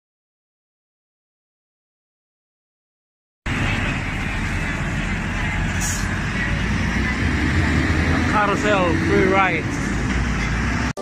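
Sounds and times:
bus engines and traffic rumble: 3.5 - 11.0
brief high hiss: 5.7 - 6.2.

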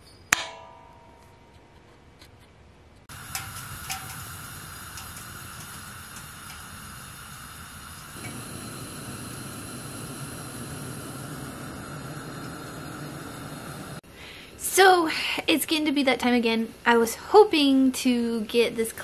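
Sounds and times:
gas hissing from heater: 3.1 - 14.0.

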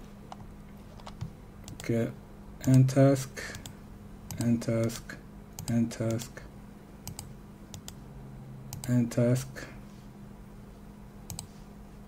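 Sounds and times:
low steady hum: 0.0 - 12.0
computer mouse clicks: 1.0 - 1.9, 3.5 - 5.0, 7.0 - 8.0, 8.7 - 9.0, 11.3 - 11.5.

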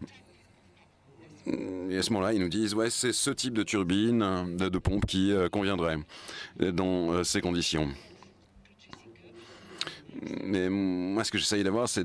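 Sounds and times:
faint low man's voice: 1.0 - 2.5, 7.6 - 11.2
man speaking: 1.3 - 8.2, 9.8 - 12.0.

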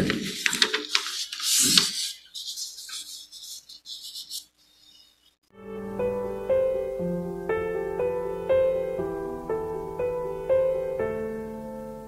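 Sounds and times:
rustling close to microphone: 0.0 - 4.5.

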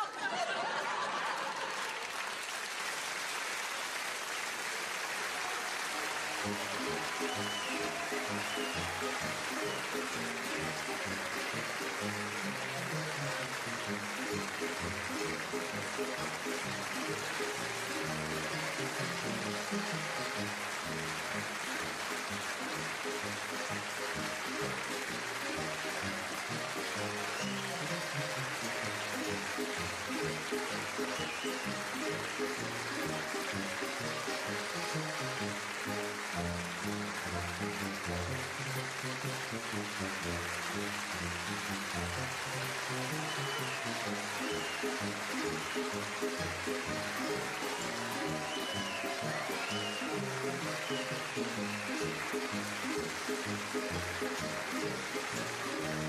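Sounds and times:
audience applauding: 0.0 - 56.0
closing music: 6.4 - 56.0.

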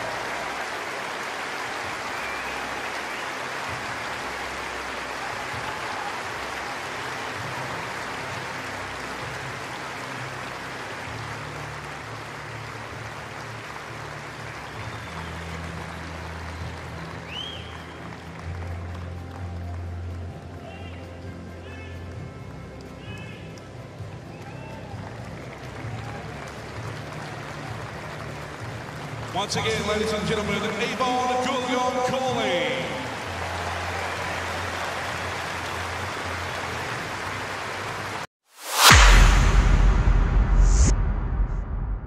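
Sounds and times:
stadium crowd applauding: 0.0 - 39.0.

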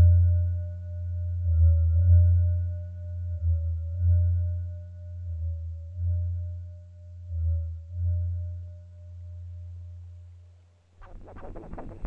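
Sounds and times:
deep droning tone: 0.0 - 12.0.

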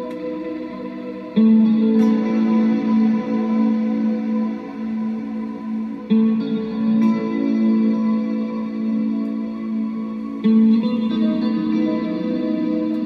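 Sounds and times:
electric guitar with reverb: 0.0 - 13.0
looping recorded guitar track: 0.0 - 13.0.

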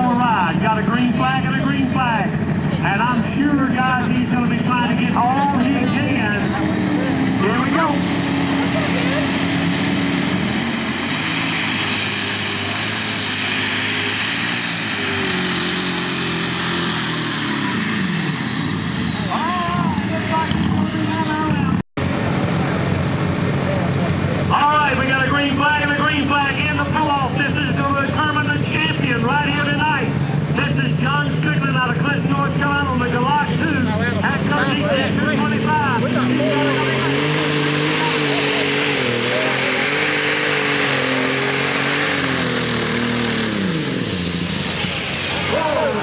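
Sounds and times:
voices: 0.0 - 9.6, 19.1 - 21.8, 23.5 - 40.5, 45.3 - 46.0
diesel engine at full power: 0.0 - 46.0
engines idling: 0.0 - 46.0
turbo whine: 5.2 - 23.0.

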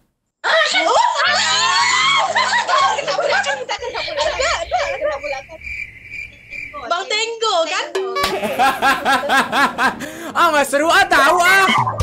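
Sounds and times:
women squealing and laughing: 0.4 - 5.7.

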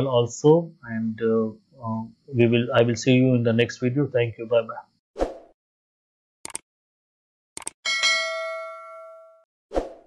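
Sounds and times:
bright bell chime: 7.9 - 9.5.

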